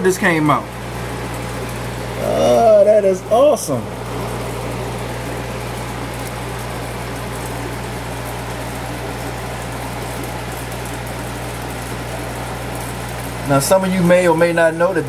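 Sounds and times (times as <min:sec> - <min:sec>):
aquarium air pump humming: 0:00.0 - 0:15.0.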